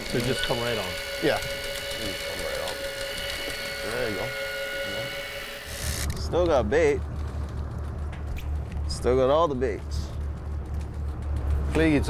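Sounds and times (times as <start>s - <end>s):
powered fishing reel whining: 0.0s - 6.2s.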